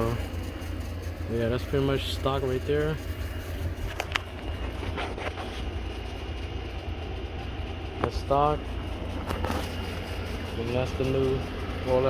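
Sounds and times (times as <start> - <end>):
air conditioning running: 0.0 - 12.0
car engine idling: 0.0 - 12.0.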